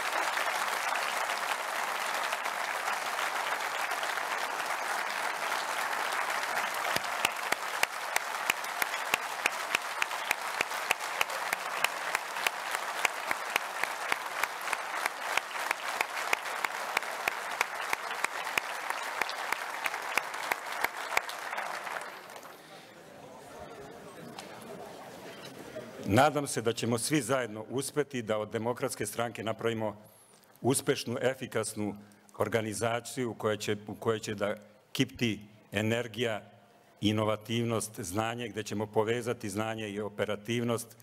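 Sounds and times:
rhythmic unison clapping: 0:00.0 - 0:22.6
crowd applauding: 0:00.0 - 0:25.5.

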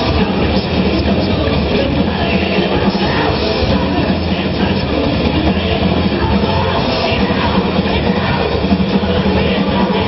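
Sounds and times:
hard rock band playing live: 0:00.0 - 0:10.0.

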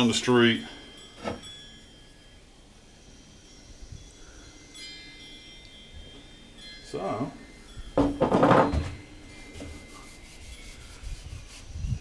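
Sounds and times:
cloth rubbing wood: 0:09.5 - 0:12.0.

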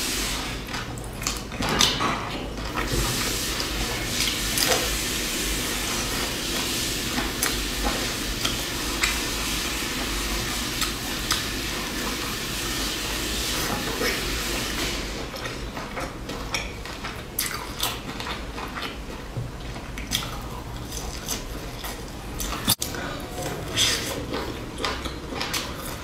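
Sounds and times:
chewing and crunching: 0:00.6 - 0:04.9, 0:15.3 - 0:26.0.

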